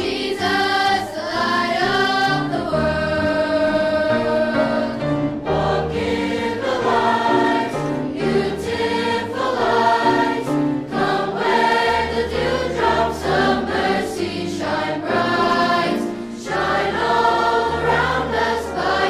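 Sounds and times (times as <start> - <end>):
children's choir singing: 0.0 - 19.0
piano accompaniment: 0.0 - 19.0.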